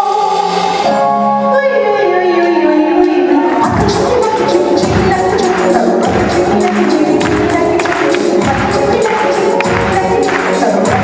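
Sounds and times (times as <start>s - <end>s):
musical accompaniment: 0.0s - 11.0s
woman singing into microphone: 0.0s - 11.0s.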